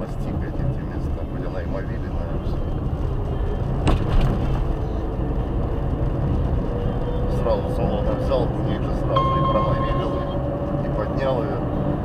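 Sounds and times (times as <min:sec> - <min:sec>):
car road and engine rumble: 0:00.0 - 0:12.0.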